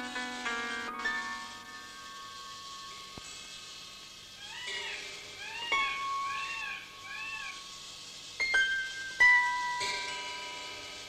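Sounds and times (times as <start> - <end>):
mewing animal calls: 4.4 - 7.7.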